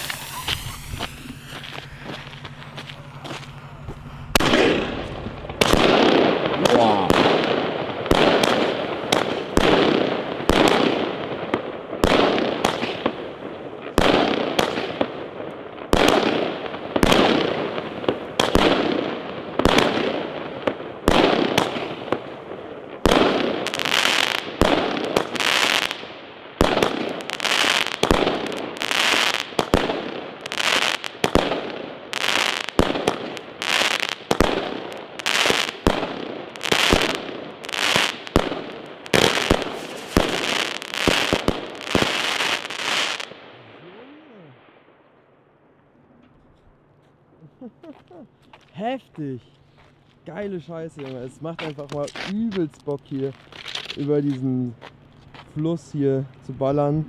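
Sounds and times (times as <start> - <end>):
firework shots banging: 0.0 - 13.3, 13.9 - 43.6.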